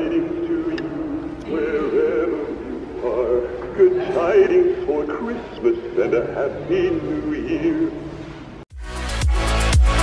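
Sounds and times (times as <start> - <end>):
animatronic figure singing: 0.0 - 8.0.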